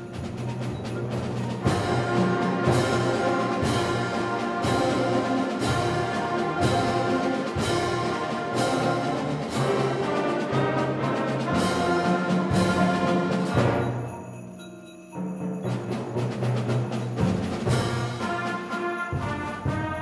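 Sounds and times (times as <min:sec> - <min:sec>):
percussion strikes: 0:00.0 - 0:20.0.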